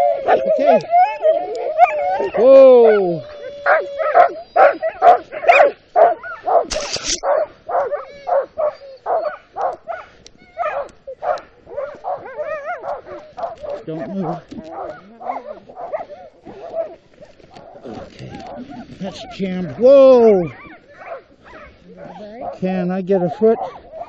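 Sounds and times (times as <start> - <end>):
dog whining: 0.0 - 9.4, 11.8 - 17.0
dog howling: 0.0 - 22.6, 23.2 - 24.0
dogs barking and yelping: 0.0 - 24.0
scraping rustle: 11.6 - 19.8.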